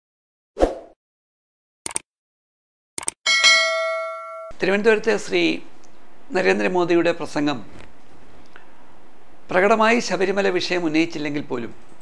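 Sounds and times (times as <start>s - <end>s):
bright bell chime: 3.3s - 4.6s.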